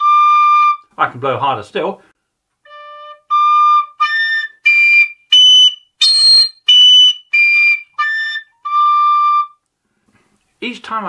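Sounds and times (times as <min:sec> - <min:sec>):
pipe overblown notes: 0:00.0 - 0:00.9, 0:02.6 - 0:09.6.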